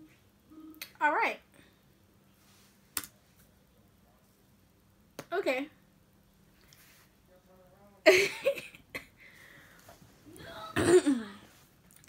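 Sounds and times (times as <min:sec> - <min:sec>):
woman clearing her throat: 0:10.4 - 0:11.4.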